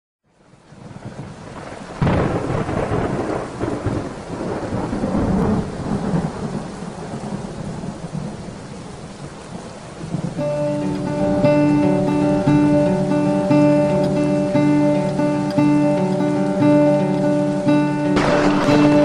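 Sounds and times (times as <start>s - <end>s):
steady rain: 0.2s - 19.0s
thunder clap rumbling: 0.9s - 10.4s, 18.2s - 19.0s.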